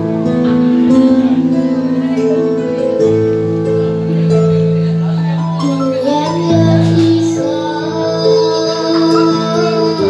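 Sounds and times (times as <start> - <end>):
electric keyboard chords: 0.0 - 10.0
boy singing a slow ballad: 5.2 - 10.0.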